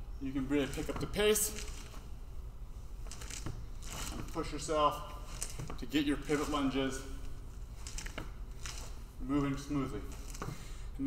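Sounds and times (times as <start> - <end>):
faint room hum: 0.0 - 11.0
soft scuffs on exercise mat: 3.0 - 10.7.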